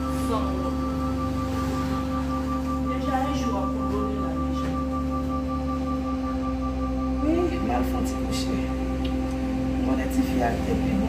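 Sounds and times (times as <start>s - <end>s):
electronic drone: 0.0s - 11.0s.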